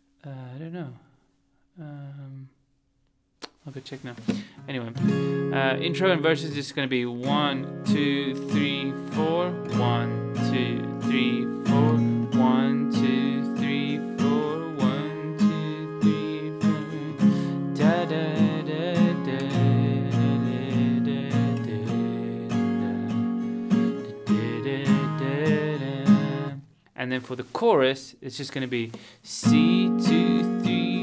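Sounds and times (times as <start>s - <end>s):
strummed acoustic guitar: 4.1s - 26.7s, 28.6s - 31.0s.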